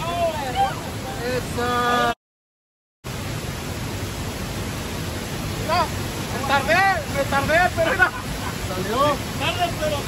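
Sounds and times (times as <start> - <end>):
turbulent water rushing: 0.0 - 2.2, 3.1 - 10.0.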